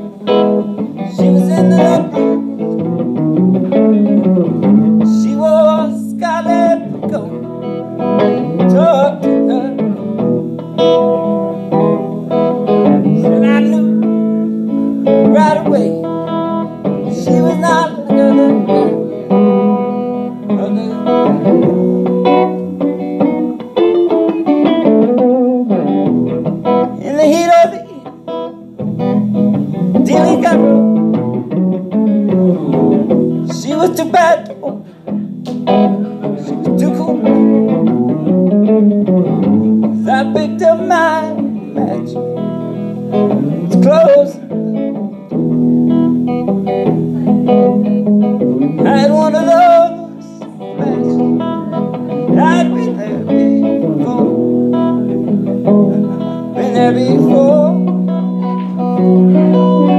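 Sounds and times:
electric guitar playing: 0.0s - 59.9s.

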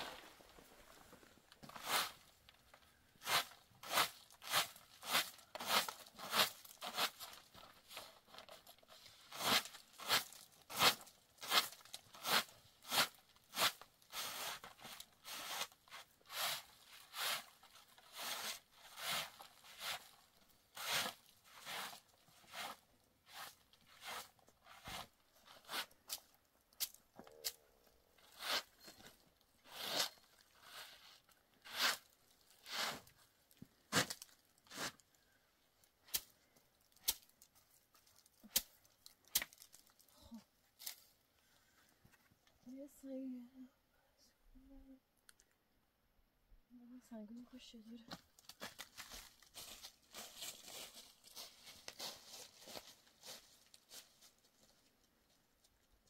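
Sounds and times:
broom sweeping plastic sheet: 1.6s - 2.4s, 3.2s - 8.0s, 9.2s - 26.0s, 28.2s - 28.8s, 29.6s - 33.1s, 49.0s - 54.3s.

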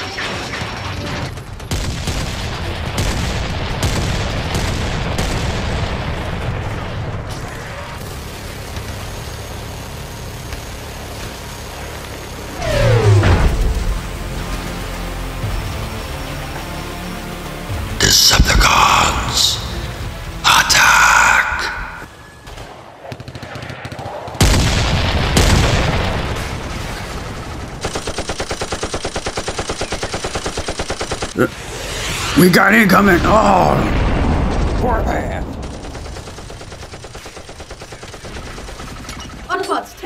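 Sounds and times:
continuous gunfire: 0.0s - 18.9s, 22.0s - 32.2s, 33.0s - 40.0s
machine-gun fire: 0.7s - 7.2s, 22.4s - 31.5s, 34.2s - 39.6s
sharp blasts: 12.4s - 14.4s, 30.2s - 39.5s.

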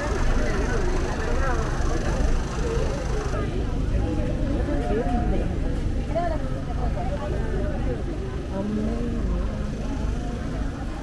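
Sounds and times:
chatter of people walking: 0.0s - 11.0s.

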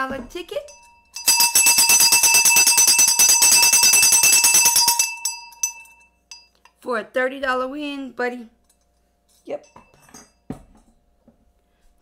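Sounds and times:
jingling bell: 0.7s - 6.6s.

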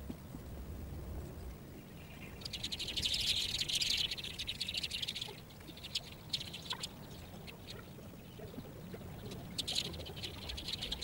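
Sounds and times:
bird chirps: 2.1s - 8.5s.

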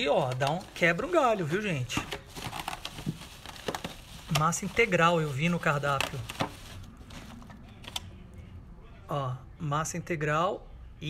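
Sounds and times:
plastic bag crinkling: 0.0s - 7.9s.

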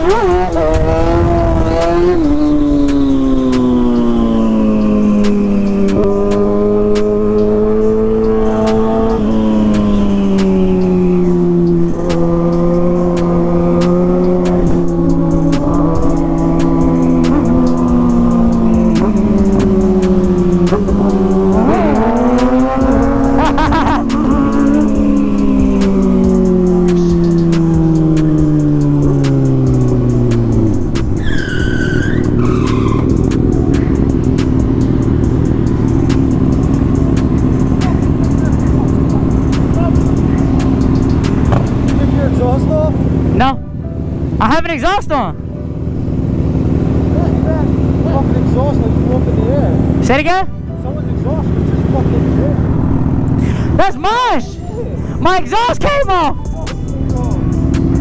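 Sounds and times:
motorcycle engine at high revs: 0.0s - 31.2s, 32.0s - 53.4s
wind and road noise: 0.0s - 58.0s.

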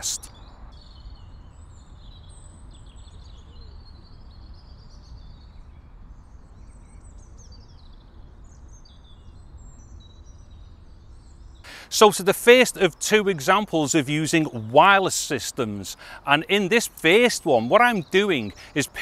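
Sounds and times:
birds chirping and twittering: 0.0s - 19.0s.

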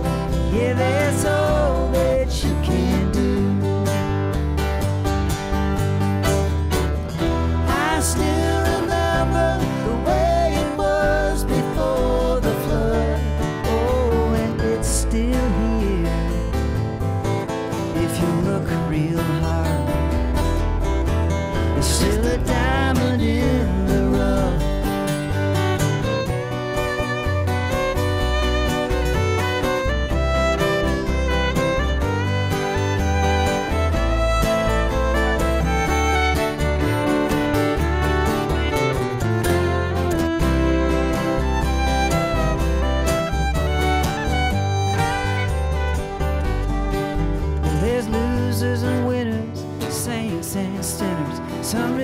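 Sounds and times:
acoustic string band playing: 0.0s - 52.0s
fiddle: 0.0s - 52.0s
upright bass: 0.0s - 52.0s.

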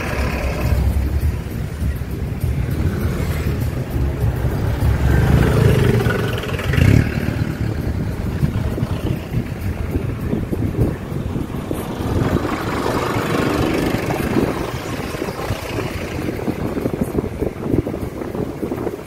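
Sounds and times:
engine and road noise rumble: 0.0s - 19.0s
scooters and cars passing: 0.0s - 19.0s.

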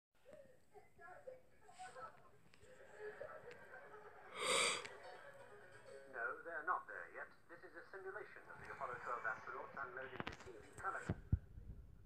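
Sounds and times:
crackly radio transmission voice: 6.1s - 11.4s.

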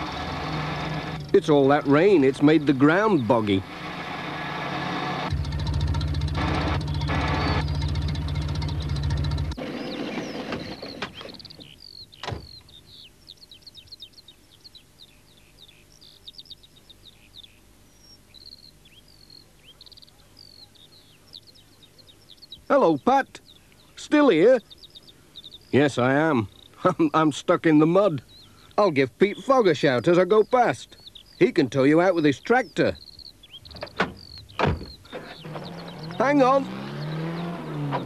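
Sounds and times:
van engine revving: 0.0s - 11.4s, 33.7s - 38.0s
birdsong chirping: 0.0s - 38.0s
thump: 12.2s - 12.6s, 33.8s - 35.0s.

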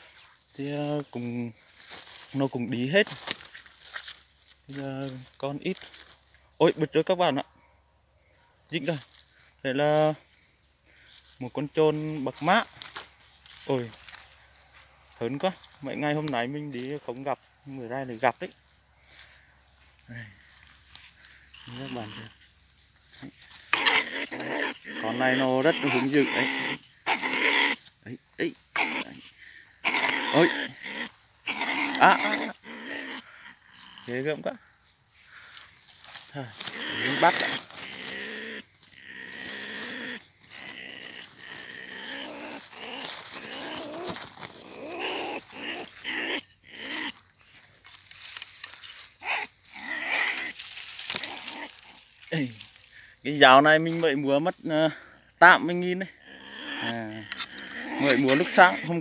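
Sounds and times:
animal rasping call: 11.8s - 59.0s.

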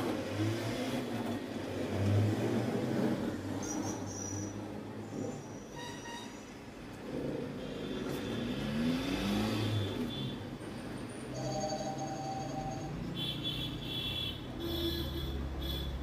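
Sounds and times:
vehicle engine passing: 8.3s - 10.1s.

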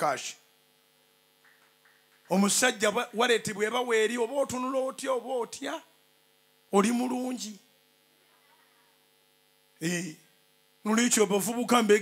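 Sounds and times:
electrical hum from sound system: 0.0s - 12.0s
man's amplified voice: 2.3s - 5.9s, 6.7s - 7.6s, 10.8s - 12.0s.

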